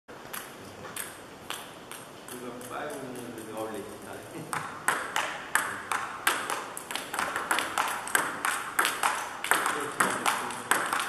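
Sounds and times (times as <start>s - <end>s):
table tennis ball bouncing: 0.3s - 3.6s, 4.4s - 11.0s.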